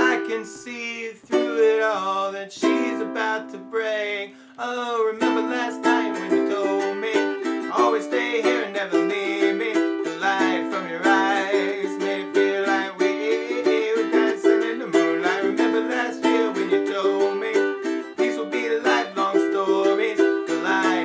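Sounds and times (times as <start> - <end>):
man singing: 0.0 - 21.0
ukulele strumming: 0.0 - 21.0.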